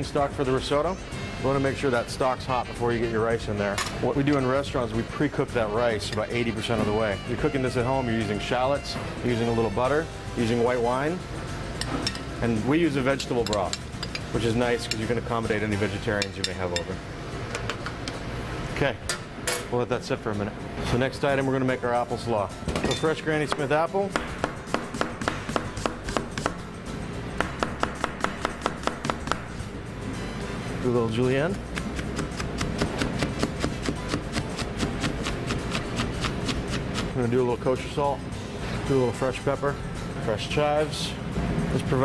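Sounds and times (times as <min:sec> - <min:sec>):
man speaking: 0:01.5 - 0:10.8
knife chopping on cutting board: 0:23.5 - 0:26.6, 0:27.4 - 0:29.4, 0:31.7 - 0:37.1.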